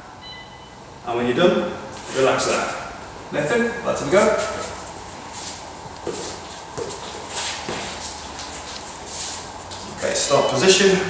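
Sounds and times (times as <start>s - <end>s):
footsteps: 4.2s - 10.4s.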